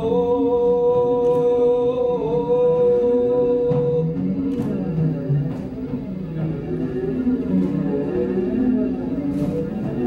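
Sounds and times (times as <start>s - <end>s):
drums: 0.0s - 10.0s.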